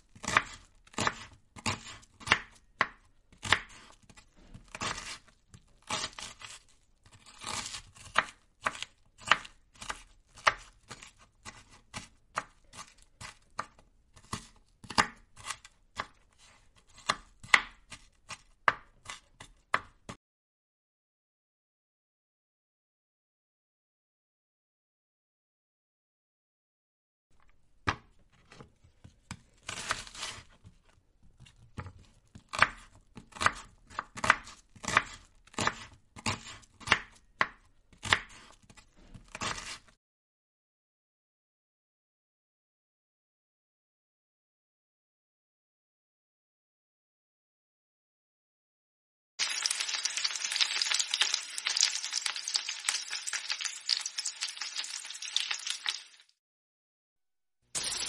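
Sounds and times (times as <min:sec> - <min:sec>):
knife chopping on cutting board: 0:00.2 - 0:20.2, 0:31.4 - 0:39.9.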